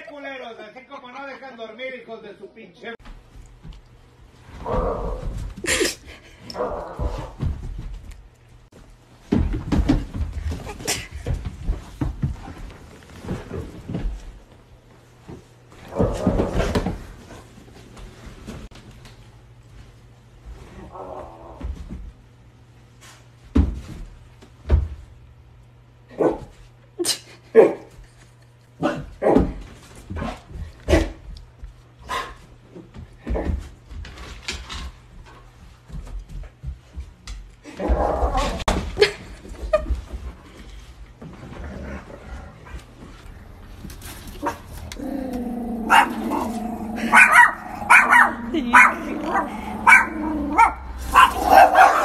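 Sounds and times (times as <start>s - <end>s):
steady low hum: 2.9s - 52.0s
paws thumping on floor: 3.0s - 22.4s, 29.2s - 52.0s
dog barking: 26.1s - 26.5s, 45.9s - 52.0s.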